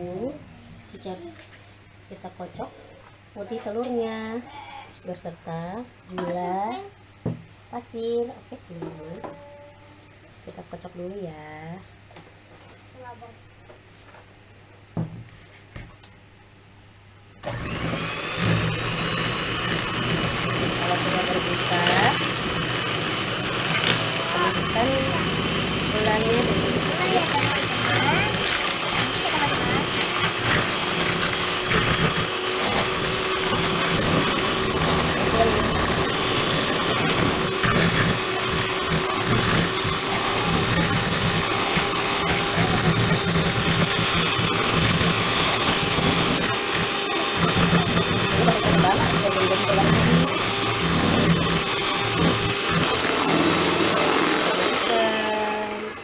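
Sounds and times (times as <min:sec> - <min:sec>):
electric hand mixer whirring: 0:17.4 - 0:56.0.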